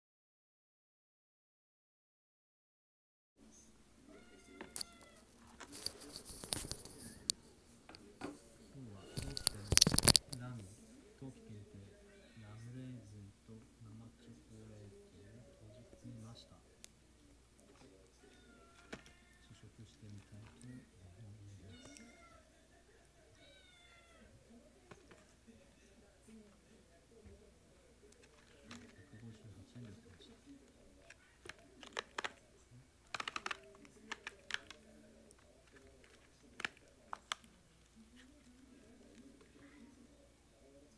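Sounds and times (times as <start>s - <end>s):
cat meowing: 4.0s - 5.4s, 18.2s - 19.5s, 21.6s - 22.5s, 23.4s - 24.4s.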